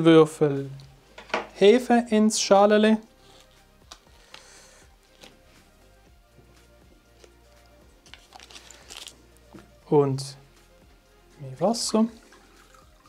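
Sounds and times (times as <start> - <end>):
quiet background music: 0.0 - 13.0
wrapper crinkling: 8.0 - 9.2
yeast scraped from wrapper: 8.1 - 9.2.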